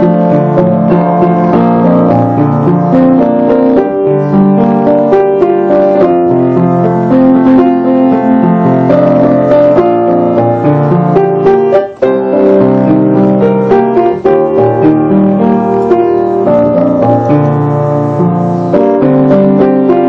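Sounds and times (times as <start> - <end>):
piano melody over chords: 0.0 - 20.0.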